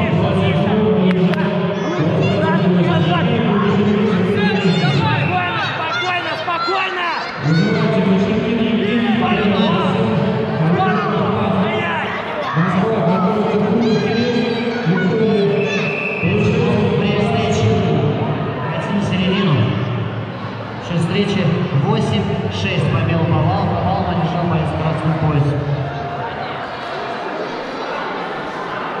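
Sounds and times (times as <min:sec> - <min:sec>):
crowd shouting in echoing hall: 0:00.0 - 0:29.0.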